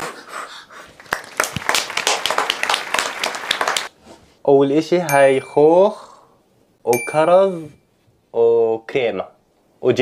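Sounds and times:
people clapping: 1.0 - 3.9.

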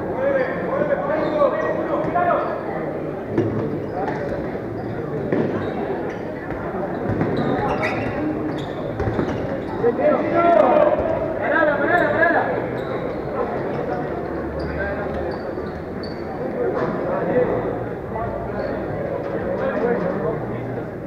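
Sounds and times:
voices shouting in echoing hall: 0.0 - 21.0
ball bouncing on court floor: 6.5 - 9.5.

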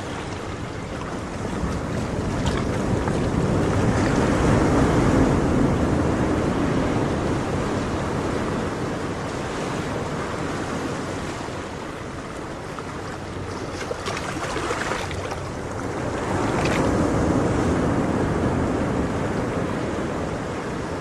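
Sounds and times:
ocean waves breaking: 0.0 - 21.0.

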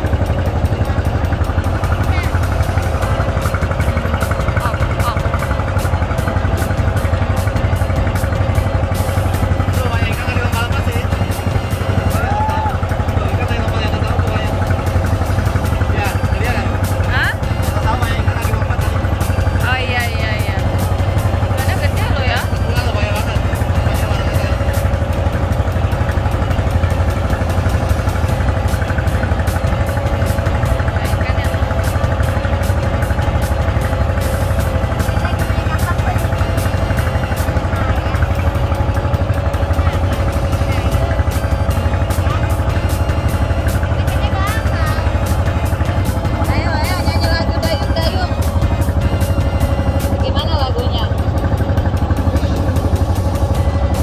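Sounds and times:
boat engine droning: 0.0 - 54.0.

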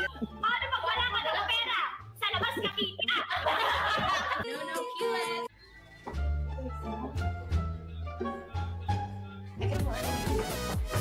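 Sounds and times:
women talking: 0.1 - 5.5
women laughing: 2.3 - 4.8.

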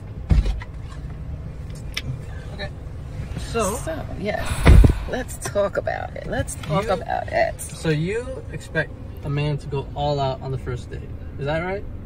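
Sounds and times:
car cabin rumble: 3.2 - 7.5.

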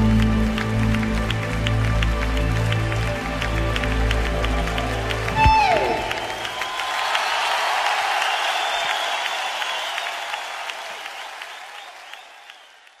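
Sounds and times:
audience applauding: 0.0 - 13.0
whistles from audience: 5.3 - 13.0.

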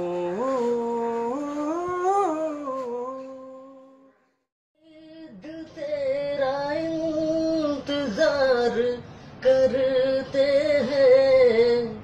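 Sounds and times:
man singing unaccompanied: 0.0 - 4.1, 4.8 - 12.0.

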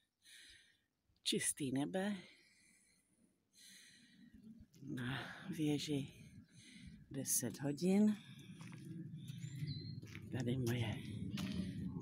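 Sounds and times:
low background rumble: 4.5 - 12.0.

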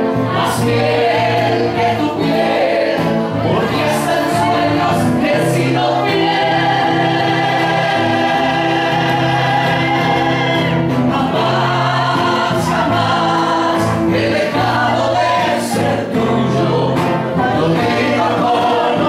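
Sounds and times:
amplified backing track: 0.0 - 19.0
karaoke group singing: 0.0 - 19.0.

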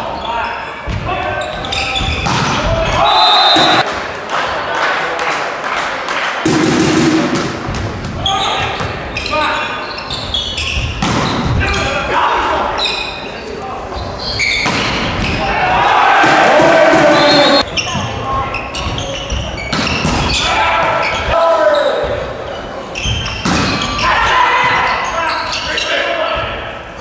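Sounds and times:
players calling and shouting: 0.0 - 4.6, 6.4 - 27.0.

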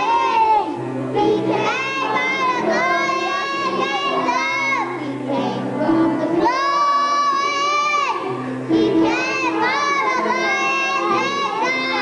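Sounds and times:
young children singing: 0.0 - 12.0.

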